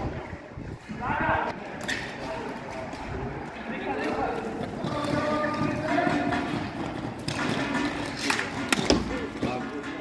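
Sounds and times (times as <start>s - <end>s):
hockey sticks clattering: 1.8s - 10.0s.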